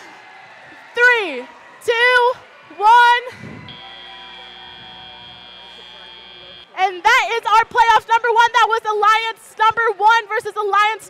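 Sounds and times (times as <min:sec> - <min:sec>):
electronic buzzer tone: 0:03.7 - 0:06.7.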